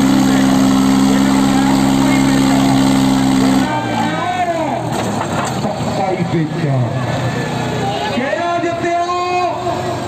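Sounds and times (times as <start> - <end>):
tractor engines under heavy load: 0.0 - 10.0
man's voice: 8.2 - 10.0.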